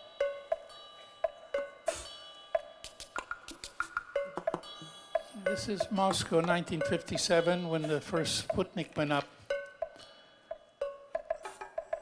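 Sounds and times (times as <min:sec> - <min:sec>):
tuned percussion notes: 0:00.0 - 0:12.0.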